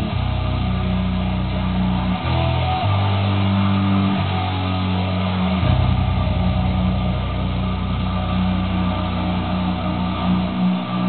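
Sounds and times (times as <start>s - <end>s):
electric bass low notes: 0.0s - 11.0s
heavy metal backing track: 0.0s - 11.0s.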